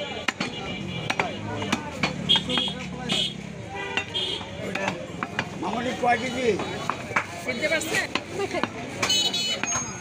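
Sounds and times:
market chatter: 0:00.0 - 0:10.0
cleaver chopping meat on wood: 0:00.1 - 0:03.4, 0:04.0 - 0:05.8.

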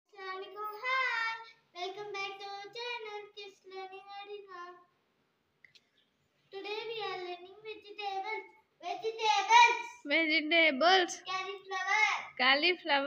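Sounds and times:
girl singing: 0:00.1 - 0:04.9.

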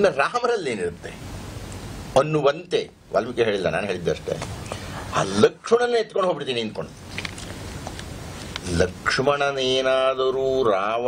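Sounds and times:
man chanting: 0:08.6 - 0:11.0.

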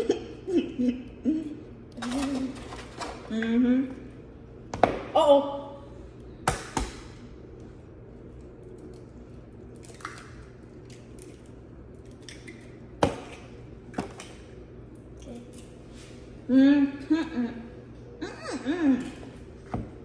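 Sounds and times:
low room hum: 0:00.0 - 0:20.0.

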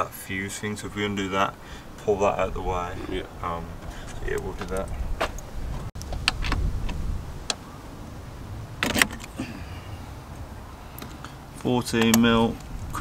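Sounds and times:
low rumble: 0:02.0 - 0:07.4
clicks and metallic knocks of tools: 0:11.9 - 0:12.7.

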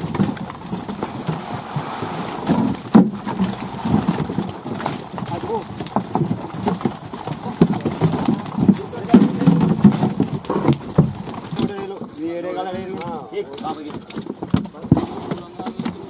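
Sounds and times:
fish flapping and slapping: 0:00.0 - 0:16.0
men talking: 0:05.2 - 0:05.7, 0:08.6 - 0:09.7, 0:11.6 - 0:16.0.

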